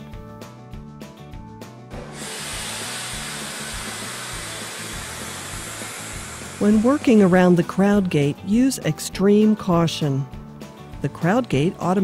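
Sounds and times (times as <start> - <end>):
background music: 0.0 - 12.0
steady hiss of milking equipment: 2.1 - 7.3.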